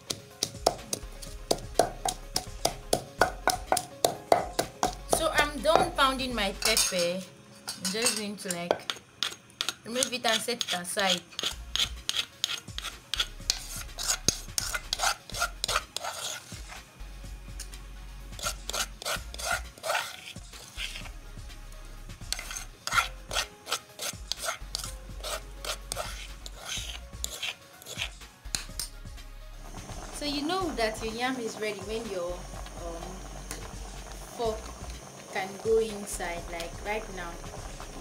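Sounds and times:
spoon scraping in a mortar: 0:00.0 - 0:16.9, 0:18.3 - 0:21.2, 0:22.3 - 0:28.9.

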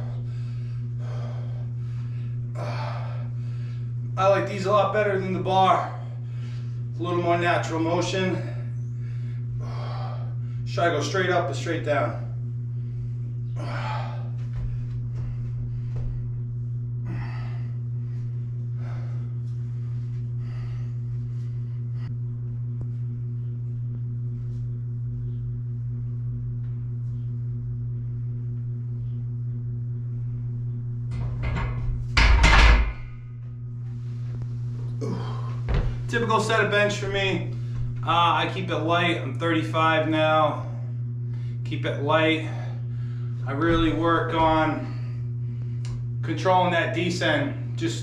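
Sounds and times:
steady low hum: 0:00.0 - 0:48.0
barbell clunking into rack: 0:31.2 - 0:33.1
short exhalations: 0:35.0 - 0:36.1.

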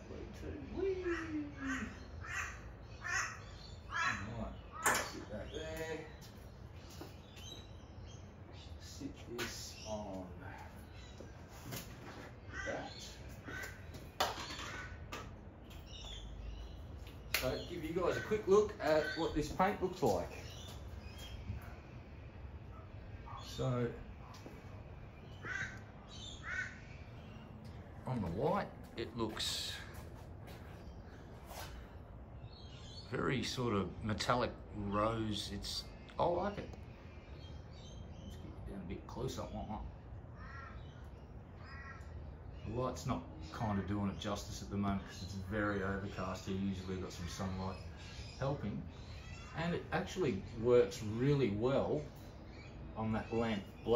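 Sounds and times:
bird calling: 0:00.0 - 0:53.9
crow cawing: 0:00.8 - 0:05.2, 0:12.2 - 0:15.3, 0:17.9 - 0:19.6, 0:25.2 - 0:27.9, 0:40.3 - 0:42.3.

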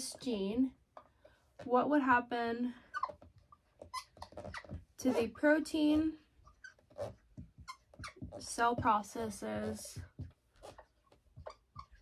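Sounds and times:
marker squeaking on whiteboard: 0:02.8 - 0:12.0.

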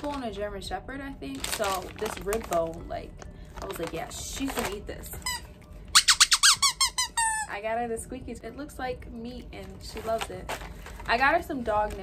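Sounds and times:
squeaky dog toy squeaking: 0:05.2 - 0:07.5.

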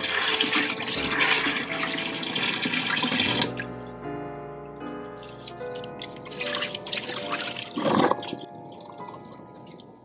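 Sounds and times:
tap water running into bowl: 0:00.0 - 0:03.6.

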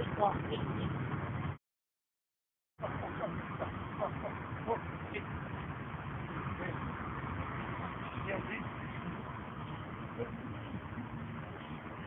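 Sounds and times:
low outdoor rumble: 0:00.0 - 0:01.6, 0:02.8 - 0:12.0.

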